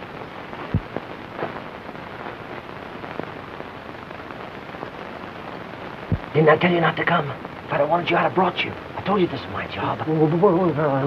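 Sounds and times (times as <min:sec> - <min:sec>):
film soundtrack hiss and crackle: 0:00.0 - 0:11.0.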